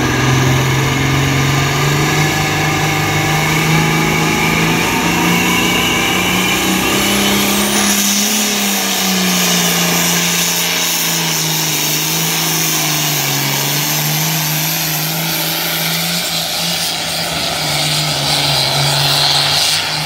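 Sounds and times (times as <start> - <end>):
tractor diesel engine under load: 0.0 - 20.0.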